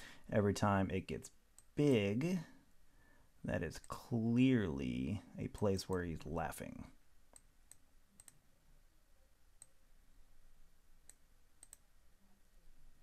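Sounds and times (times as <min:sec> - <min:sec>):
faint computer mouse clicks: 0:07.3 - 0:08.4, 0:11.0 - 0:11.8.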